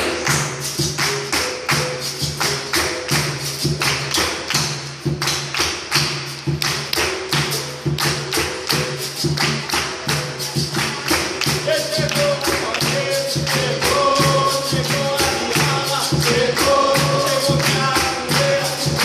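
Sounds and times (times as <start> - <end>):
berimbau: 0.0 - 19.0
hand drum: 0.0 - 19.0
hand-clapping: 0.0 - 19.0
pandeiro: 0.0 - 19.0.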